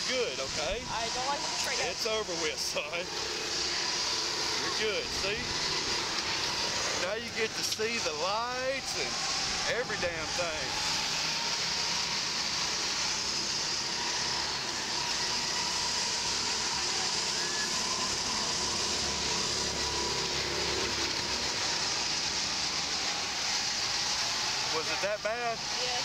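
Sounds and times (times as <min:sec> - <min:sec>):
fairground rides and machinery running: 0:00.0 - 0:26.0.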